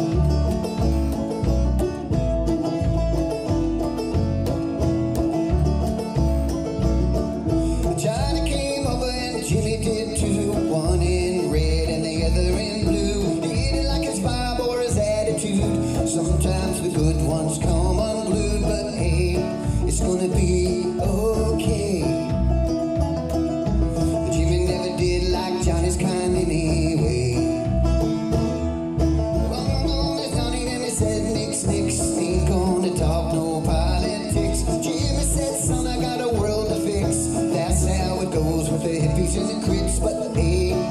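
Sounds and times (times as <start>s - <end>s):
banjo picking: 0.0s - 40.9s
upright bass plucking: 0.0s - 40.9s.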